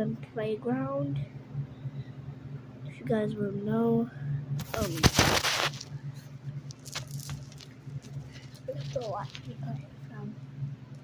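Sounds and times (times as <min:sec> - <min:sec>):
steady low hum: 0:00.0 - 0:11.0
phone handling rustle: 0:04.6 - 0:05.8.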